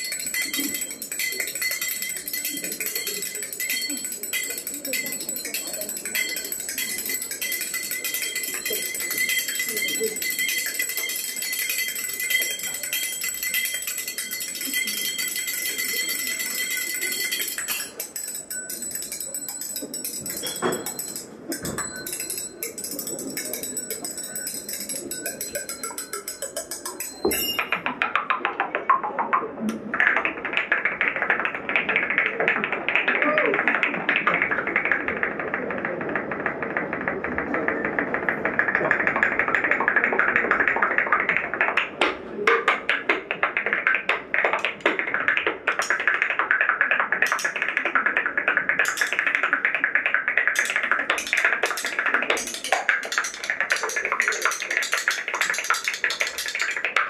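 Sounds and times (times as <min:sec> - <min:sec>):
bright jingling rattle: 0:00.0 - 0:27.8
rapid clicks and crackles: 0:29.9 - 0:57.0.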